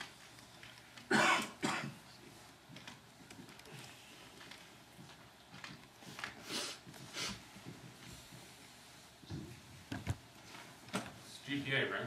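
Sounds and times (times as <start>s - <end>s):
person coughing: 1.1s - 2.0s.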